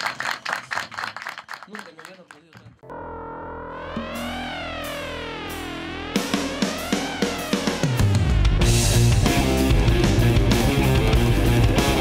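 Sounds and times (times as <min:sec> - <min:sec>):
sustained synthesizer chord: 0:02.9 - 0:09.6.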